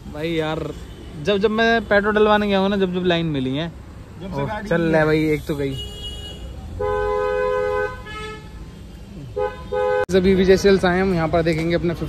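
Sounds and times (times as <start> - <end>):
two-tone car horn honking: 5.4 - 8.6, 9.4 - 10.1.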